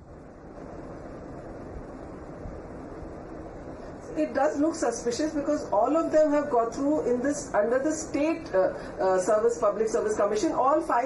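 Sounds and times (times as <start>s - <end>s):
microphone line hiss and rumble: 0.0s - 11.0s.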